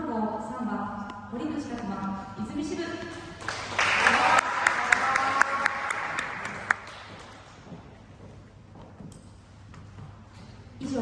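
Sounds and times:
spectators applauding: 3.1 - 7.5.

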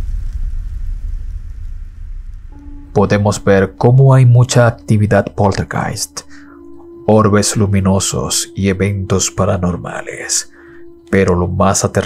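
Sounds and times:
deep low rumble: 0.0 - 6.1.

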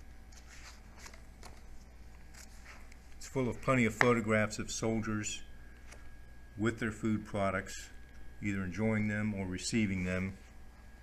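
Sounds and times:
book pages turning: 0.3 - 4.2.

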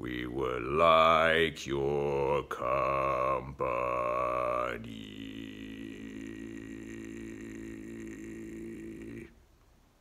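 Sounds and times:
man singing unaccompanied: 0.0 - 9.4.

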